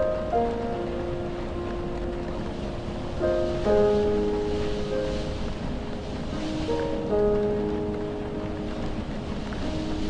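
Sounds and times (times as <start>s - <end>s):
soft piano notes: 0.0s - 10.0s
steady rain hiss: 0.0s - 10.0s.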